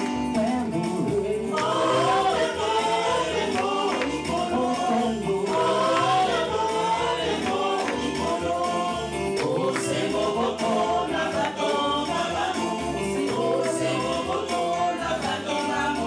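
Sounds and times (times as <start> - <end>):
instrumental accompaniment with beat: 0.0 - 16.0
choir and congregation singing hymn: 1.0 - 16.0.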